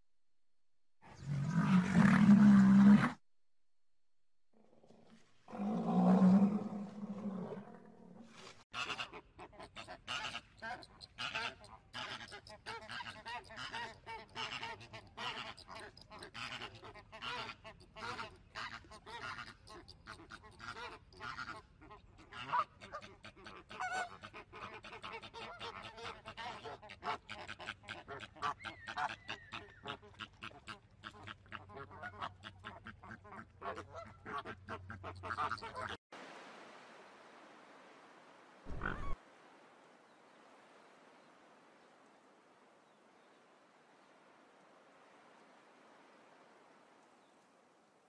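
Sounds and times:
birds honking and quacking: 38.7s - 39.2s.

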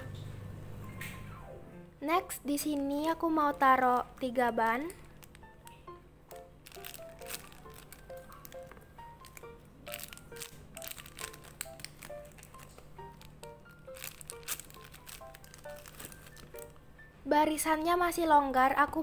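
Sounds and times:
plucked background music: 0.0s - 19.0s
plastic bags crinkling: 2.6s - 5.5s, 6.6s - 16.8s.

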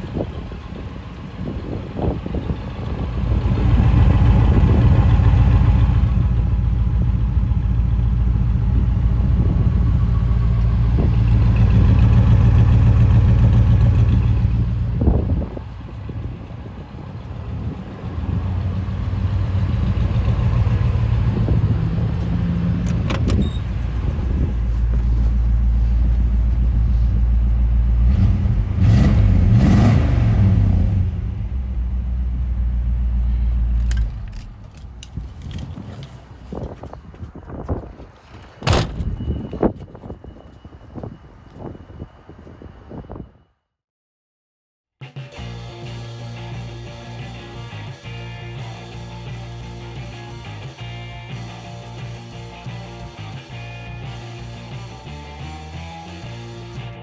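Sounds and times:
car engine idling: 0.0s - 28.8s.

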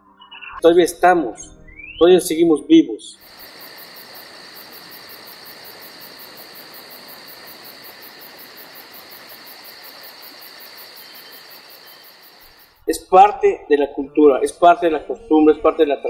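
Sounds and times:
crickets trilling: 3.2s - 12.8s
high pulsing insect chirp: 3.2s - 12.8s.

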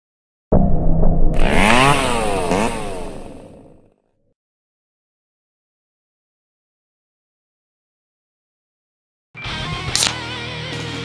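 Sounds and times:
chainsaw revving: 1.4s - 3.8s.

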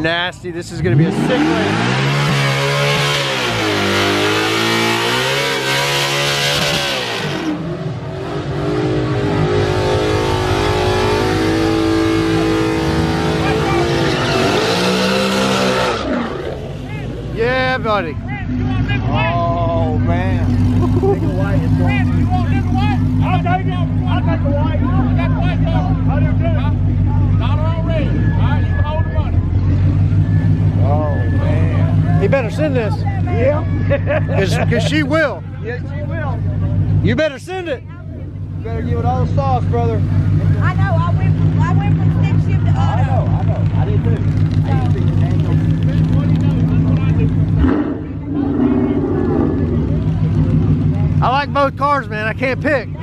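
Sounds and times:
car engines revving hard: 0.0s - 37.8s, 38.4s - 53.0s
car engine idling: 0.0s - 53.0s.

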